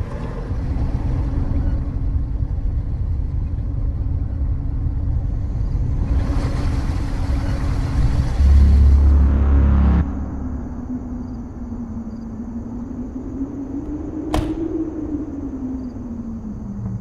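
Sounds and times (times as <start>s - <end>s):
loud deep low sound: 8.3s - 11.9s.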